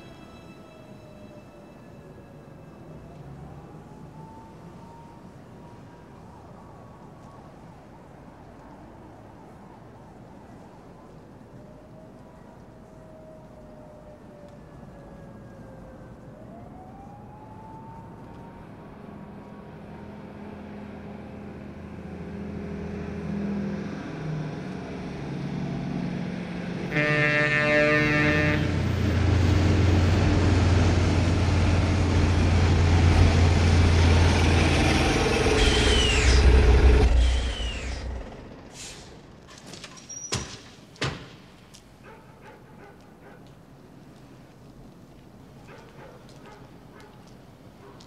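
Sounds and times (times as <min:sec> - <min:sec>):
heavy truck engine: 0:21.7 - 0:39.6
air horn blast: 0:26.9 - 0:28.9, 0:35.2 - 0:37.4
brakes squealing: 0:33.1 - 0:40.9.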